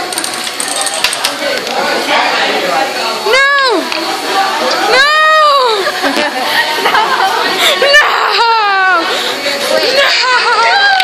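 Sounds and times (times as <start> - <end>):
teenagers chattering excitedly: 0.0 - 11.0.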